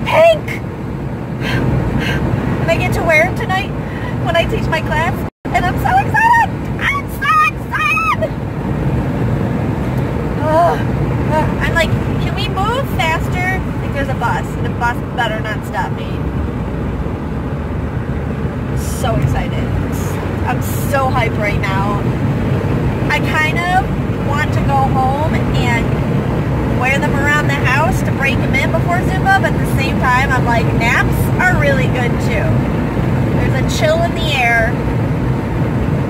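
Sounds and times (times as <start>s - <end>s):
car road and engine rumble: 0.0s - 36.0s.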